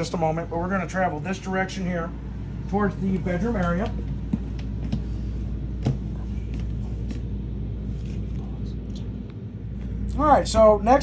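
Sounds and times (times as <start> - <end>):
air conditioners rumbling: 0.0 - 11.0.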